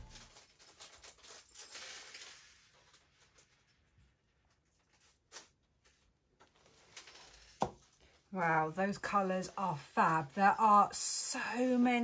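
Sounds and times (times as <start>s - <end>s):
faint soft handling sounds: 0.0s - 8.4s.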